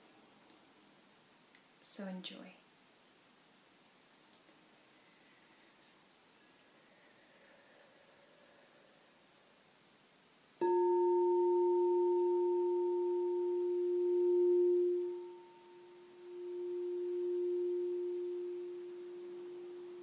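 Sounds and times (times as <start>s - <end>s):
mallet striking bowl: 10.6s - 15.5s
singing bowl ringing: 10.6s - 20.0s.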